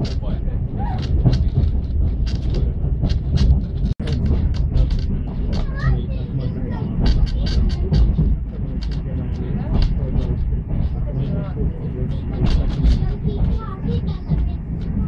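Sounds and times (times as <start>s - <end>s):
sharp clicks and knocks: 0.0s - 0.4s, 1.0s - 6.0s, 6.8s - 15.0s
train low rumble: 0.0s - 15.0s
people's voices: 4.0s - 15.0s.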